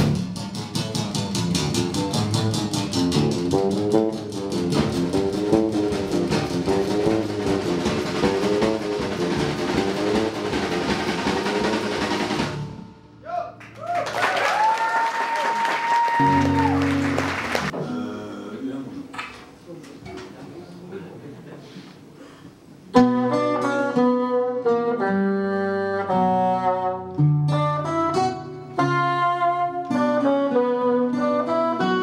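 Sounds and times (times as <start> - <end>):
guitar picked pattern: 0.0 - 13.2, 22.9 - 32.0
drum kit: 0.0 - 13.4.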